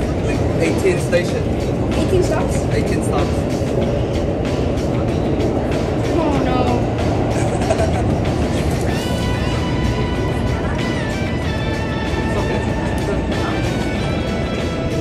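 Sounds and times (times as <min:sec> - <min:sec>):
subway train rumble: 0:00.0 - 0:15.0.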